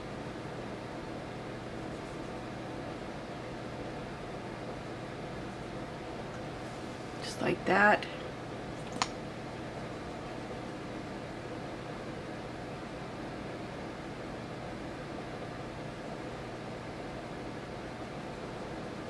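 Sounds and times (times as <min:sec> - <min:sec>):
faint hum: 0:00.0 - 0:19.0.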